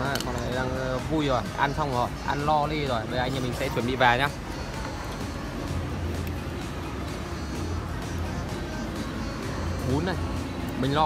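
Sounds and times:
background music: 0.0 - 11.0
food court hum: 0.0 - 11.0.

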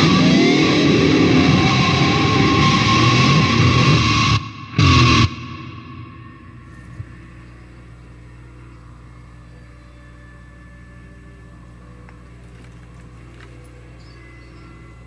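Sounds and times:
amplifier hum and hiss: 0.0 - 15.0.

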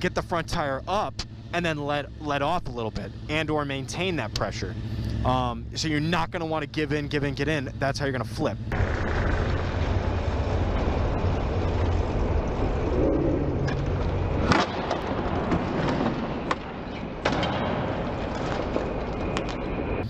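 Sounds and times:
motorbike engine running: 0.0 - 16.8
sharp crack: 13.6 - 19.8.

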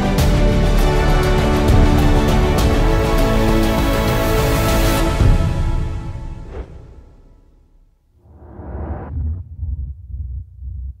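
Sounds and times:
whoosh: 6.4 - 10.0
deep bass pulses: 8.1 - 11.0.

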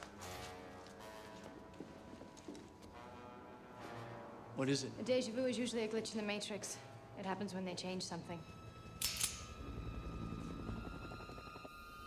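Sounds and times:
low rumbling drone: 8.5 - 12.0.

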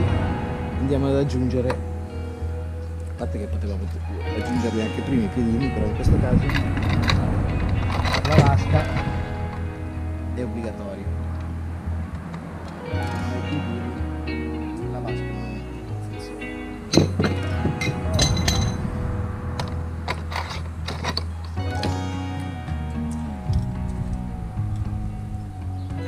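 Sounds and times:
background music: 0.0 - 26.0
metal parts clinking: 6.4 - 9.1, 16.9 - 18.8, 19.6 - 21.9.

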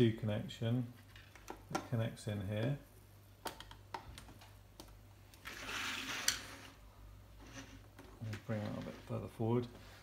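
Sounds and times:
keyboard scraping across wooden desk: 5.4 - 6.8, 7.4 - 9.2.

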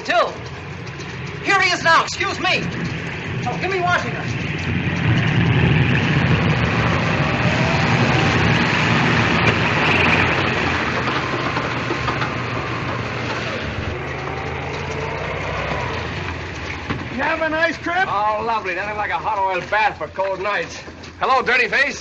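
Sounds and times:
biplane piston engine running: 0.0 - 20.0.

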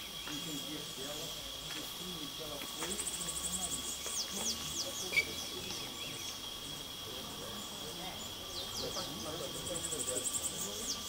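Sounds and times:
faint distant talk: 0.0 - 11.0
high insect drone: 0.0 - 11.0
birds calling: 2.1 - 11.0.

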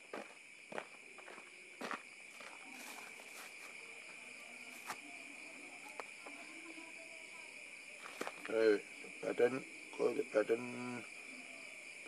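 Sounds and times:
footsteps on dirt path: 0.0 - 5.1, 8.0 - 8.6
night insects chirring: 0.0 - 12.0.

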